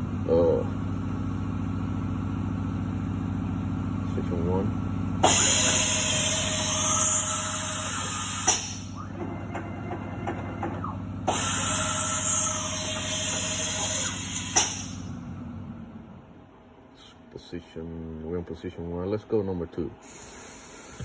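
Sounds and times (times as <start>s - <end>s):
steady machine hum: 0.0s - 21.0s
motor whine ramping: 5.2s - 15.9s
carousel stopping clunk: 8.4s - 11.6s.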